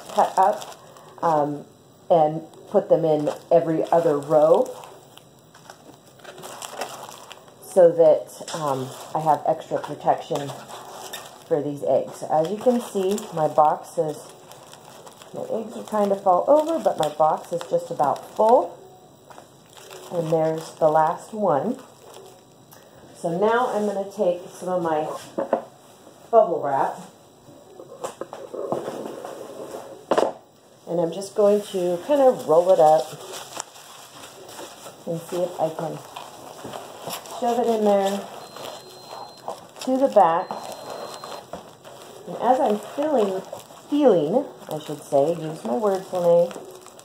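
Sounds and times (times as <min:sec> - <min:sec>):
bubble wrap snapping: 0:00.0 - 0:01.2, 0:03.2 - 0:07.6, 0:12.4 - 0:18.7, 0:19.3 - 0:21.0, 0:32.1 - 0:47.0
bubble wrap rustling: 0:00.0 - 0:01.7, 0:02.4 - 0:22.6, 0:31.2 - 0:47.0
paper towel rustling in cardboard box: 0:31.4 - 0:47.0.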